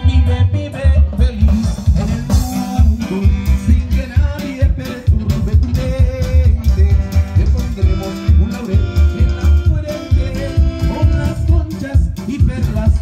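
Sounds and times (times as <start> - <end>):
bass and drum beat: 0.0 - 13.0
keyboard melody: 0.0 - 13.0
live band music over loudspeakers: 0.0 - 13.0
person singing: 0.0 - 13.0.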